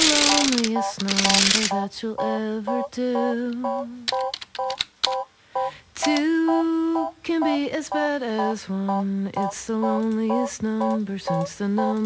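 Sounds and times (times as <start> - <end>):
sharp clicks: 0.0 - 1.9, 3.5 - 5.2, 6.0 - 6.3, 9.4 - 12.0
short electronic beeps: 0.2 - 7.6, 8.4 - 11.5.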